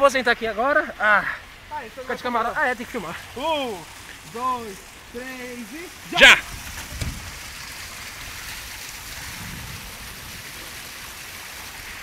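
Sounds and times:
water rushing down slides: 2.0 - 12.0.

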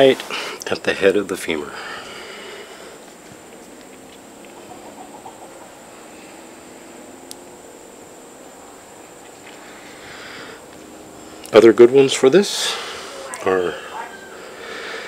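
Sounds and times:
faint steady hiss: 0.0 - 15.0.

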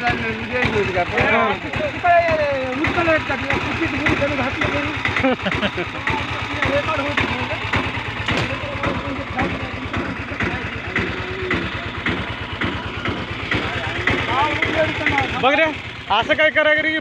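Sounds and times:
auto-rickshaw engine idling: 0.0 - 17.0
voices talking: 0.0 - 17.0.

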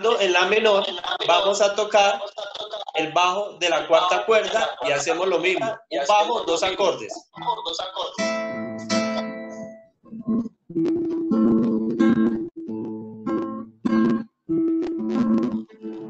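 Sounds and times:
classical guitar bass note and strums: 8.2 - 16.0.

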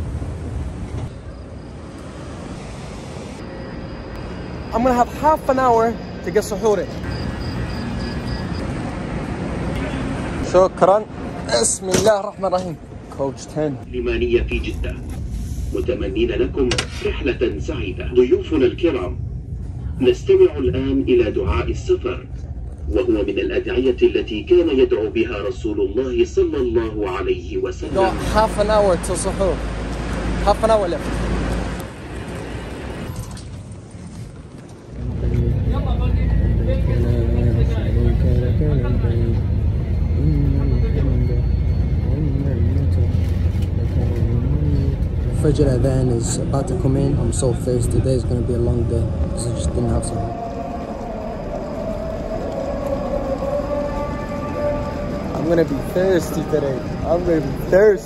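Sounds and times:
bus engine rumble: 0.0 - 58.0
train rushing hum: 0.0 - 58.0
person chanting: 35.0 - 45.4, 48.2 - 57.7
faint high beeps: 38.7 - 45.0.

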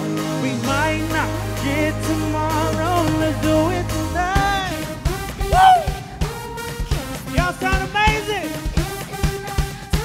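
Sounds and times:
live pop band playing: 0.0 - 10.0
person singing: 0.1 - 10.0
drum hits: 2.0 - 10.0.

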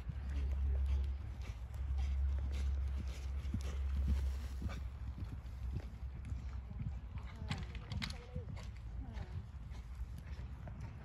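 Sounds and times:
horse hooves trotting on sand: 0.0 - 11.0.

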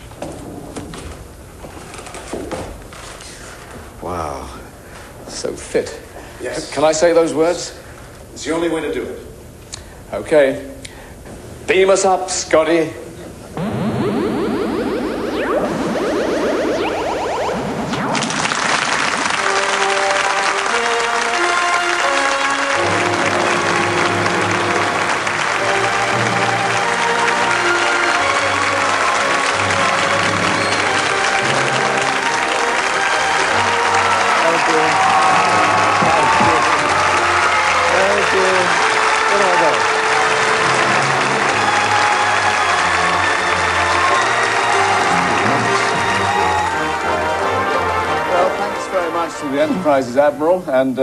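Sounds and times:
audience applauding: 13.6 - 49.1.

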